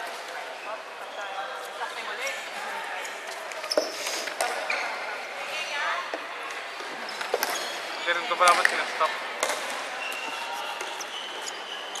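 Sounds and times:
murmur of distant voices: 0.0 - 12.0.

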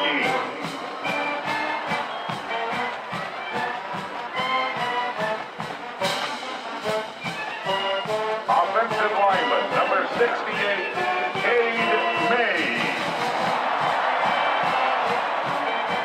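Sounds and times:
announcer's voice over pa: 0.0 - 1.1, 8.4 - 13.1
marching band playing: 0.0 - 16.0.

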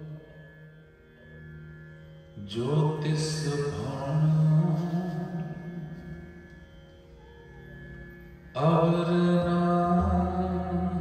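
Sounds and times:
harmonium: 0.0 - 11.0
man singing long held note: 2.4 - 6.3, 8.6 - 11.0.

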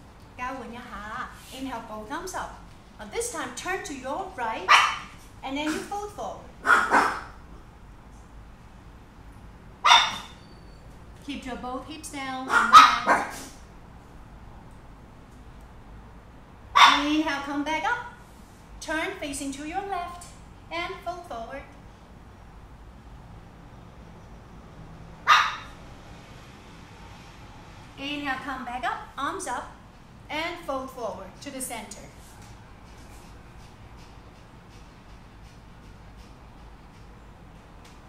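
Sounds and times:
small dog barking: 4.7 - 5.1, 6.6 - 7.3, 9.8 - 10.4, 12.5 - 13.5, 16.8 - 17.0, 25.2 - 25.8.

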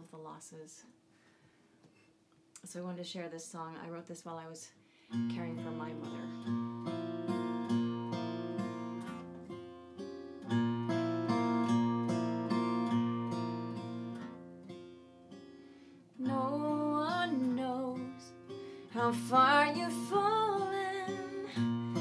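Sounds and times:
acoustic guitar chords: 5.1 - 22.0.

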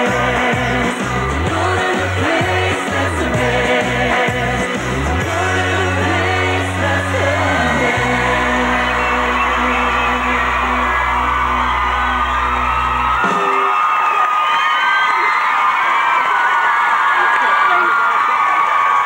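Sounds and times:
pop song with singing: 0.0 - 13.7
audience cheering and whooping: 7.7 - 19.0.

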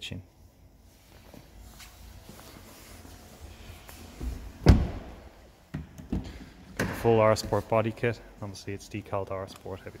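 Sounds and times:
faint shuffling and handling: 0.4 - 4.6
heavy low thump: 4.6 - 5.3.

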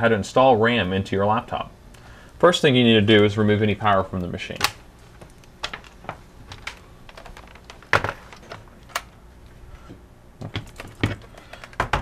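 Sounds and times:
plastic case clicks and knocks: 10.4 - 12.0.

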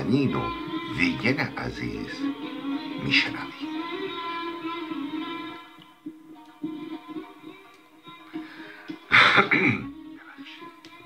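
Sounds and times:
instrumental music: 0.0 - 11.0.

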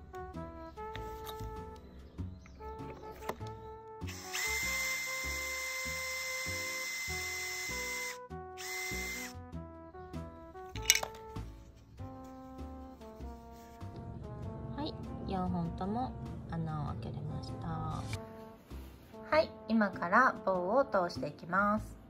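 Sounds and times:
background music: 0.0 - 22.0
cordless drill whining: 4.1 - 9.4.

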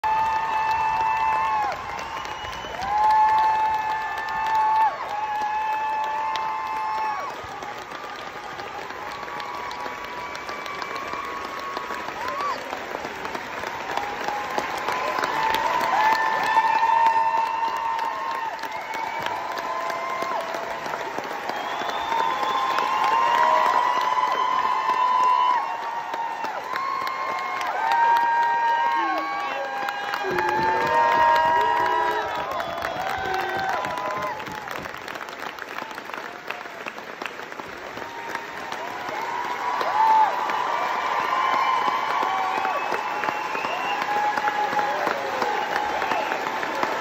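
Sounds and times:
high held whoops: 0.0 - 13.0, 13.8 - 37.0, 38.0 - 47.0
audience applauding: 0.0 - 47.0.

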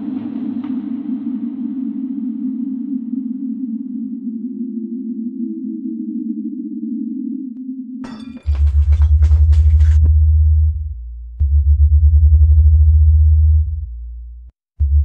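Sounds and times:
deep hum: 8.1 - 15.0.

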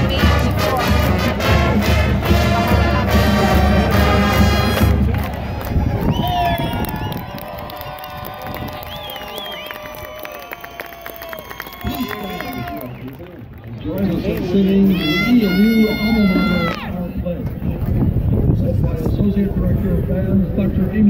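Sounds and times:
marching band brass and percussion: 0.0 - 6.2
crowd cheering and clapping: 0.0 - 17.0
people shouting: 14.8 - 16.9.

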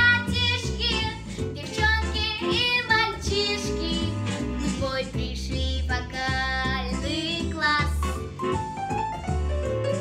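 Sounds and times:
girl singing: 0.0 - 8.2
instrumental backing with bass: 0.0 - 10.0.

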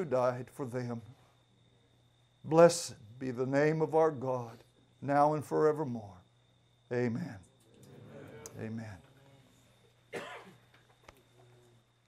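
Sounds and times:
person coughing: 10.1 - 10.6.

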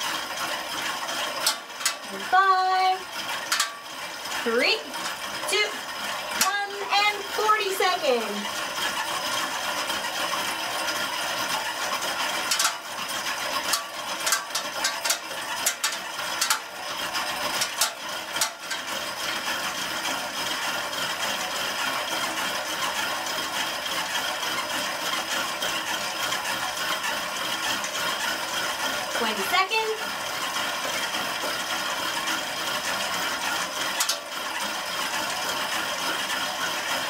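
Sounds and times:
exercise bike flywheel whirring: 0.0 - 37.0
sharp clicks and knocks: 1.2 - 2.3, 3.4 - 3.8, 6.3 - 7.2, 12.4 - 12.9, 13.6 - 16.8, 17.4 - 19.4, 33.9 - 34.3.

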